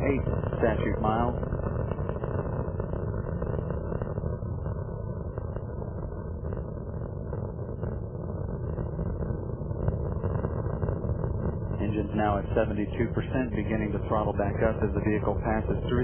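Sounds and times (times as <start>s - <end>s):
crackling rocket rumble: 0.0s - 16.0s.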